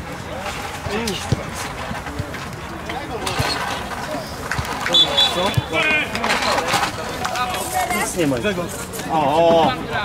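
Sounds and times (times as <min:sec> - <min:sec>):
open-air background noise: 0:00.0 - 0:10.0.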